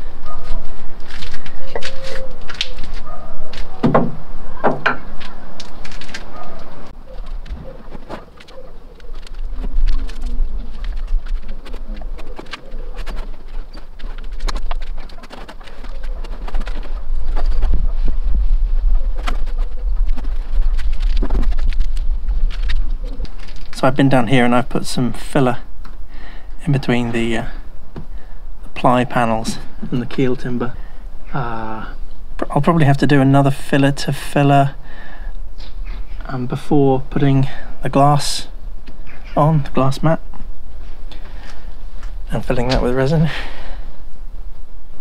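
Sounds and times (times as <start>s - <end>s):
bird calling: 1.6s - 5.6s, 6.3s - 18.2s, 39.0s - 39.7s.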